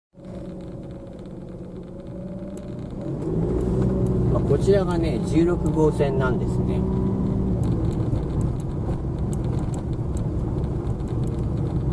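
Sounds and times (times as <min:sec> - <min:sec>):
car engine and road noise: 0:00.1 - 0:11.9.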